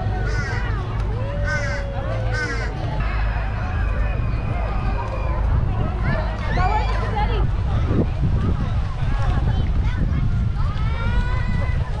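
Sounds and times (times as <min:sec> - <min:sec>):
steady low rumble: 0:00.0 - 0:12.0
bird cawing: 0:00.3 - 0:00.6.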